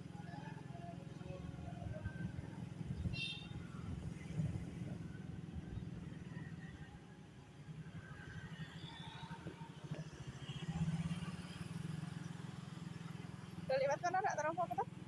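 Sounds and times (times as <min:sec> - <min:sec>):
road noise: 0:00.0 - 0:15.0
vehicle engine rumble: 0:00.0 - 0:15.0
cars and motorcycles passing: 0:02.0 - 0:15.0.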